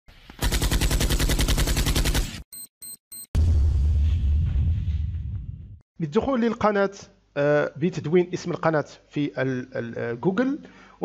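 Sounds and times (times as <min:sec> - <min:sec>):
machine-gun fire: 0:00.4 - 0:02.4.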